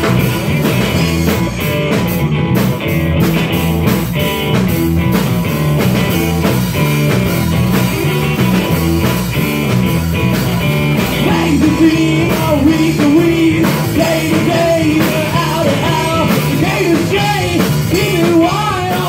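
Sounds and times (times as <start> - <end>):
bass guitar: 0.0 - 19.0
distorted electric guitar: 0.0 - 19.0
drum kit beat: 0.0 - 19.0.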